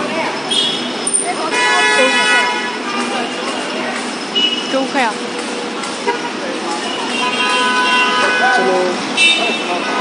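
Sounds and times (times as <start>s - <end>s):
street traffic: 0.0s - 10.0s
voices chattering: 0.0s - 10.0s
vehicle horn blast: 1.5s - 2.8s, 6.1s - 10.0s.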